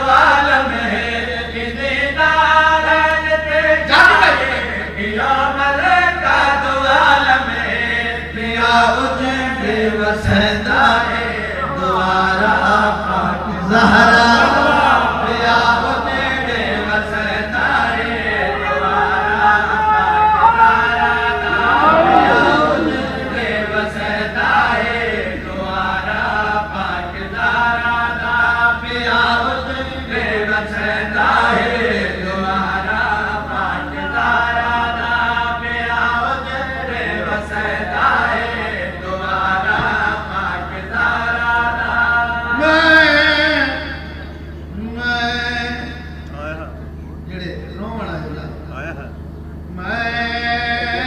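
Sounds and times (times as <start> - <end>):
man chanting over loudspeakers: 0.0 - 51.0
steady low hum: 0.0 - 51.0.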